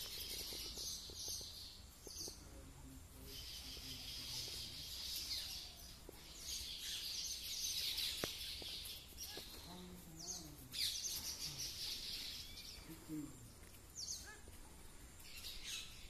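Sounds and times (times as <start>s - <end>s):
weaver birds chattering: 0.0s - 16.0s.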